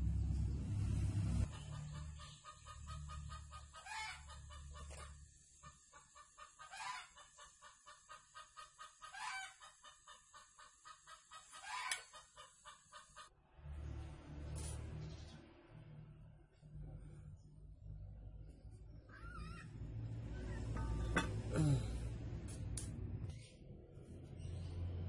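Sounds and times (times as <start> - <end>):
poultry clucking: 1.4 - 13.3.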